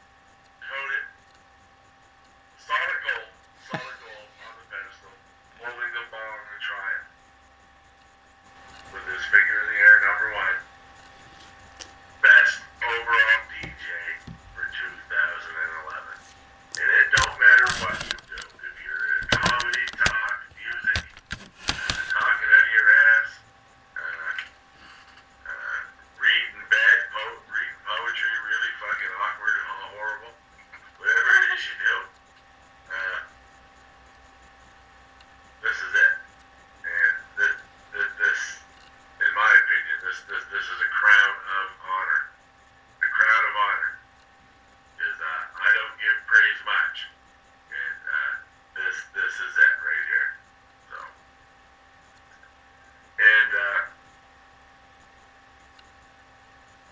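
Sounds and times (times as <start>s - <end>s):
faint steady hum: 0.0s - 56.9s
indistinct talking: 0.6s - 1.2s, 2.6s - 7.2s, 8.7s - 11.1s, 11.7s - 23.4s, 24.0s - 32.2s, 32.9s - 33.4s, 35.6s - 44.0s, 44.9s - 51.2s
sharp clicks: 19.2s - 22.2s.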